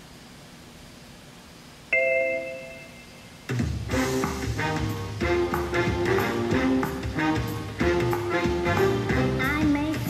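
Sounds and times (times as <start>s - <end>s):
bell-like ding: 1.9s - 3.3s
music: 2.0s - 10.0s.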